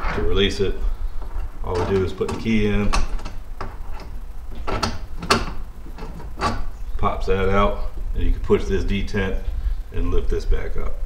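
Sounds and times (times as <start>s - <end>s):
key working a lock: 1.7s - 6.7s.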